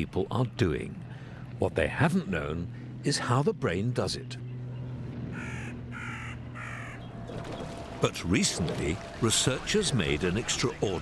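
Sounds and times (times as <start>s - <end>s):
low steady hum: 0.0s - 11.0s
bird harsh calls: 4.4s - 7.9s.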